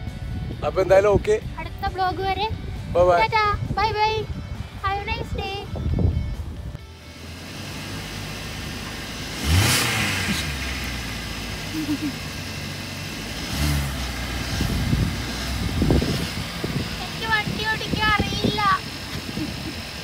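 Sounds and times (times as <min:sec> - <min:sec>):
car engine idling and revving: 0:00.0 - 0:20.0.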